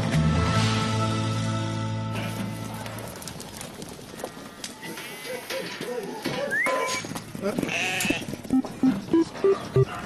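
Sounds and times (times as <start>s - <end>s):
sheep bleating: 7.6s - 8.3s.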